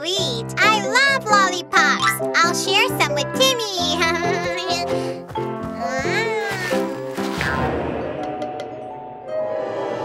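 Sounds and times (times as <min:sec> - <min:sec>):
cartoon background music: 0:00.0 - 0:10.0
cartoon kitten meow: 0:05.9 - 0:07.6.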